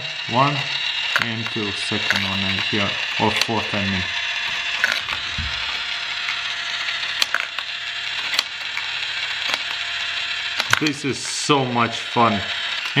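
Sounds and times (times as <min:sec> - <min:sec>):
marbles rattling whir: 0:00.0 - 0:13.0
marbles dropping clicks: 0:01.0 - 0:11.5.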